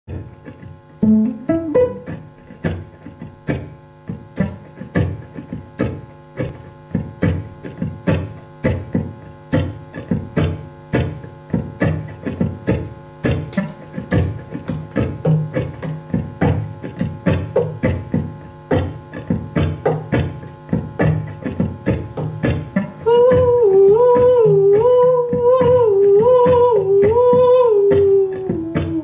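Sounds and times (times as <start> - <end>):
faint electrical hum: 0.1 - 29.0
amplified pizzicato violin: 1.0 - 2.8.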